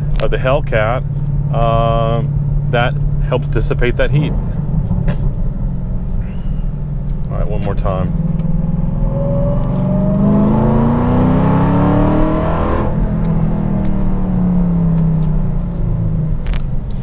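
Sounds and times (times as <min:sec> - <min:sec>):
car engine accelerating hard: 0:00.0 - 0:17.0.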